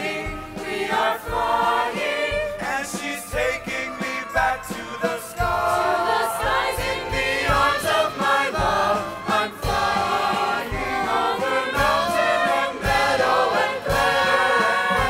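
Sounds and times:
chorus singing with accompaniment: 0.0s - 15.0s.

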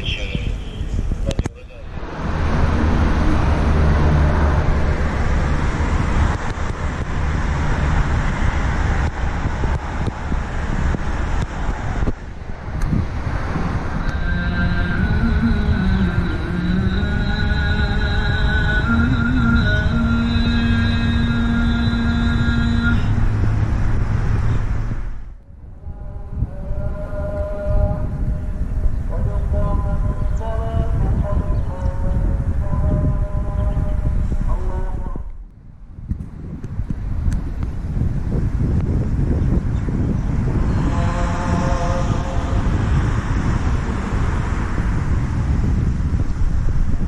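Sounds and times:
sustained pitched tones: 0.0s - 11.4s, 13.3s - 29.4s, 40.4s - 44.8s
road traffic rumble: 0.0s - 47.0s.

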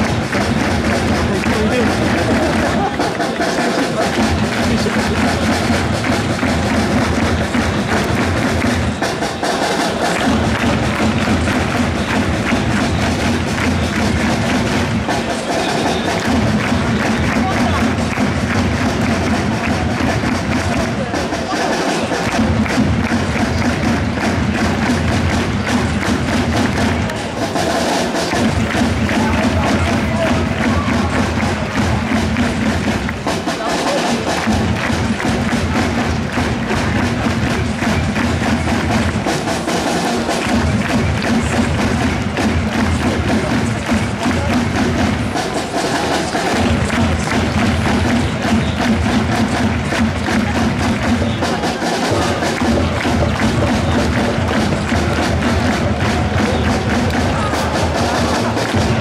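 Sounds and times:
drums beating: 0.0s - 59.0s
crowd chanting: 35.6s - 59.0s.

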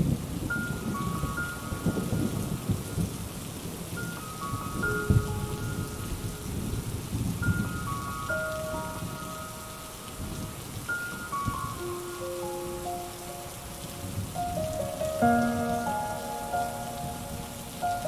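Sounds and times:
rolling thunder rumbling: 0.0s - 18.0s
steady rain: 0.0s - 18.0s
slow bell-like melody: 0.4s - 18.0s.

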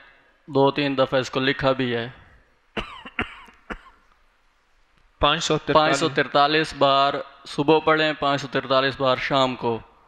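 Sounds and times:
man coughing: 2.8s - 4.1s.

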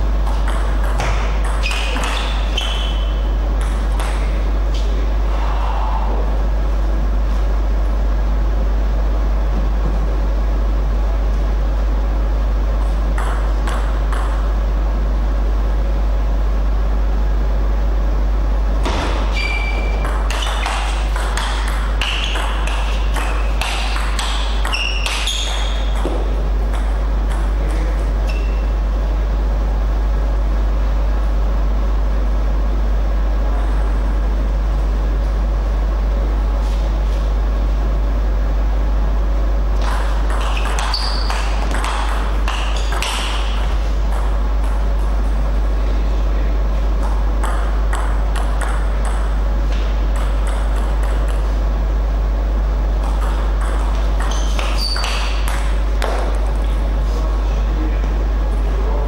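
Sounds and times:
table tennis ball bouncing: 0.0s - 4.4s, 13.1s - 14.6s, 18.8s - 28.6s, 39.8s - 44.9s, 47.0s - 51.5s, 53.0s - 56.6s
loud low hum: 0.0s - 59.0s.

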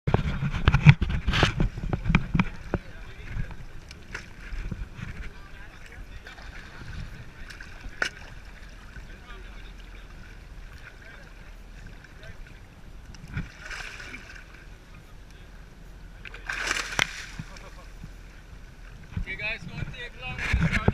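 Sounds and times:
water lapping: 0.1s - 20.9s
water splashing and sloshing: 0.1s - 20.9s.

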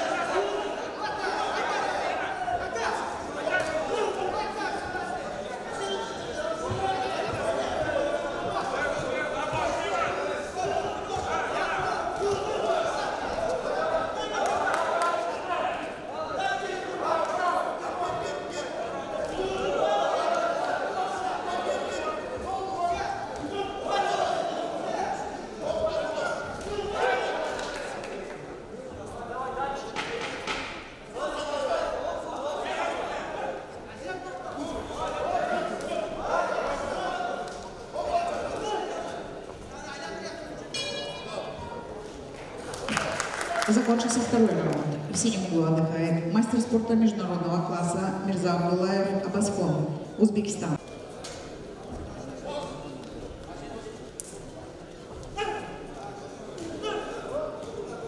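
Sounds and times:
voices calling out in a hall: 0.0s - 58.0s.

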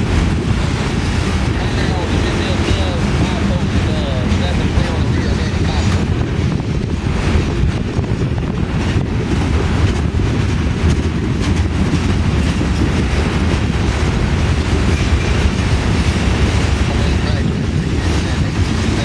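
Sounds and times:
freight train rumbling past: 0.0s - 19.0s
wheels clicking over rail joints: 7.2s - 19.0s.

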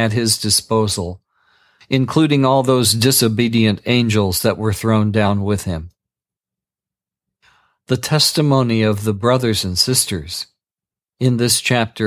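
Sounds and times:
person speaking: 0.0s - 1.2s, 1.8s - 6.0s, 7.9s - 10.5s
faint in-breath: 1.2s - 1.9s, 7.4s - 7.8s.

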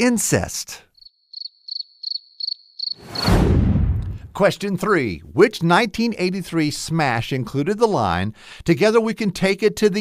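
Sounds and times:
high cricket chirps: 0.9s - 3.3s
rushing whoosh with deep rumble: 3.0s - 4.3s.

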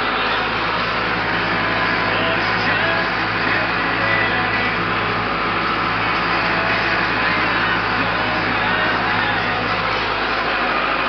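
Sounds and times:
road noise: 0.0s - 11.0s
vehicle engine hum: 0.0s - 11.0s.

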